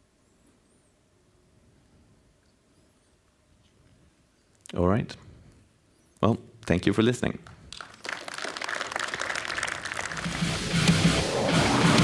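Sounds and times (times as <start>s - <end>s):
audience applause: 7.7s - 12.0s
outro music: 9.9s - 12.0s.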